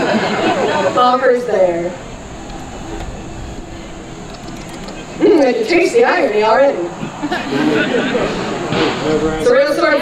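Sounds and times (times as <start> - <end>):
low rumble: 1.4 - 7.5.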